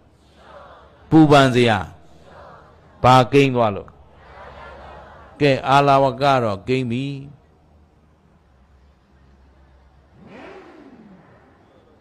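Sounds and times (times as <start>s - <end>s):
engine revving or passing: 10.0s - 12.0s.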